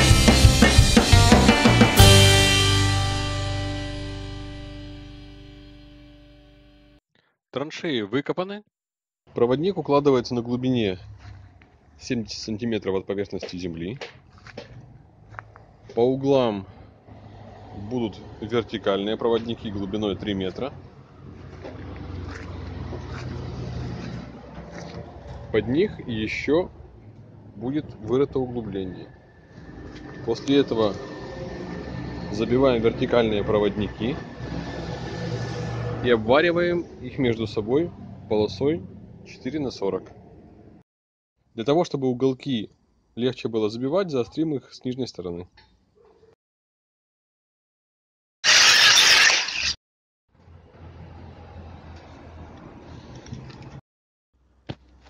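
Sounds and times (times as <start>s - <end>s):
faint scuffs: 13.5s - 16.0s, 21.5s - 25.0s
angle grinder grinding steel: 48.4s - 49.8s.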